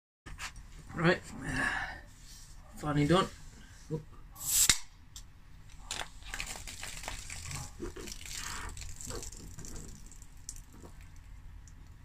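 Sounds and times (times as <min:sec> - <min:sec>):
foil wrapper crinkling and tearing: 0:05.7 - 0:11.0.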